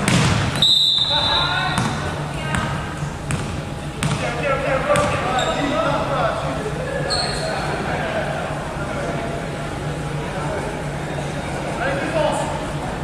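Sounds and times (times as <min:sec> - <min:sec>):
basketball bouncing on hardwood floor: 0:00.0 - 0:00.5, 0:01.8 - 0:04.2
voices of players and crowd: 0:00.0 - 0:13.0
short high referee whistle: 0:00.6 - 0:01.6.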